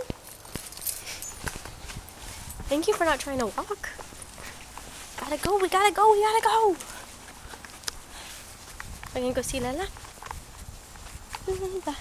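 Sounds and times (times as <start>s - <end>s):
clothing rustling: 0.0s - 12.0s
footsteps: 0.0s - 12.0s.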